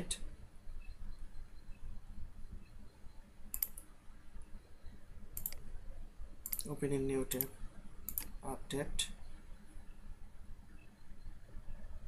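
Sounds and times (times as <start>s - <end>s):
computer mouse clicking: 3.5s - 3.9s, 5.3s - 5.7s, 6.4s - 6.7s, 8.1s - 8.3s.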